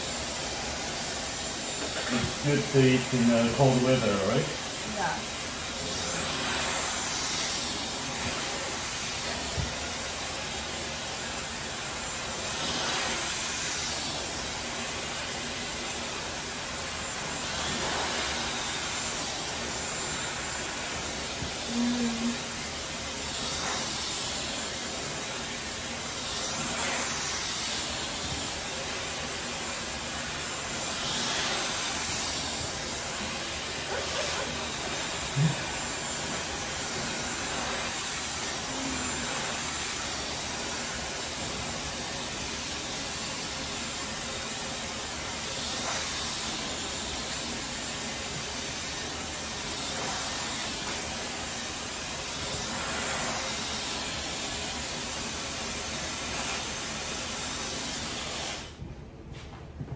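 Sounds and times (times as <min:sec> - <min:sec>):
hair dryer blowing: 0:00.0 - 0:59.0.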